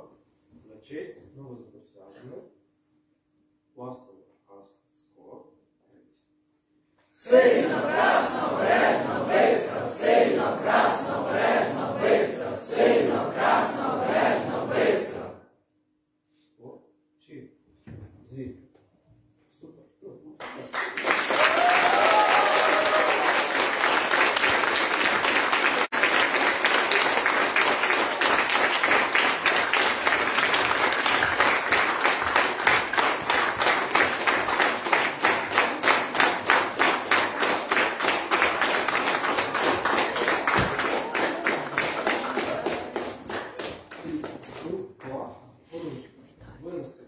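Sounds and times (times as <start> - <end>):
rhythmic clapping in unison: 7.4 - 15.3, 20.4 - 45.3
audience applauding: 20.4 - 44.7.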